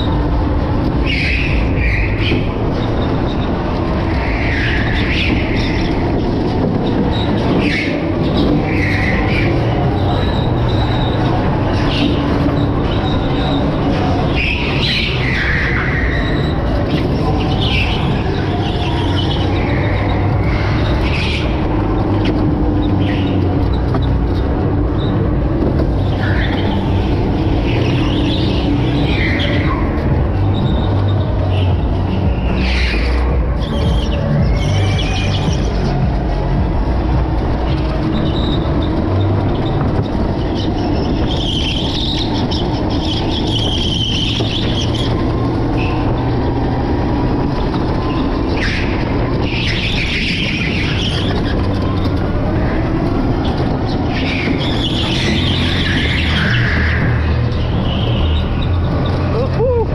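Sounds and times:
go-kart motor running: 0.0 - 59.9
tyres squealing: 0.0 - 59.9.

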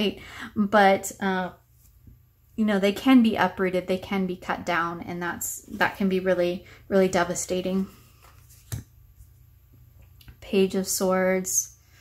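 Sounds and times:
low steady room hum: 0.0 - 12.0.

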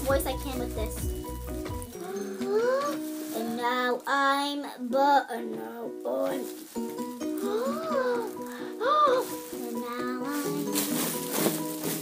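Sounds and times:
child's high-pitched voice: 0.0 - 1.1, 2.0 - 6.6, 7.4 - 10.8
background music: 0.0 - 12.0.

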